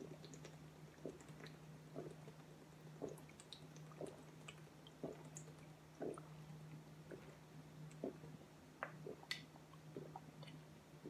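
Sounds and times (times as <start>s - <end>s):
faint steady hum: 0.0s - 11.0s
person gulping water: 3.0s - 6.3s, 8.8s - 10.6s.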